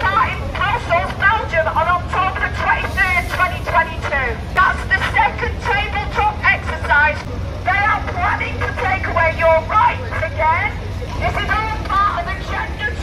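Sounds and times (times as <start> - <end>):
indistinct speech: 0.0 - 13.0.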